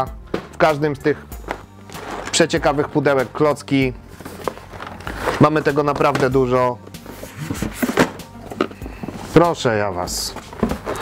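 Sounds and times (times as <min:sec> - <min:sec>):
cardboard boxes rubbing and knocking: 0:04.1 - 0:06.4, 0:07.0 - 0:11.0.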